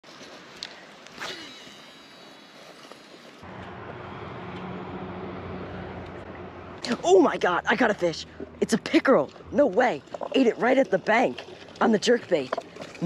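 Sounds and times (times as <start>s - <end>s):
fishing reel cranking hum: 1.2s - 3.4s.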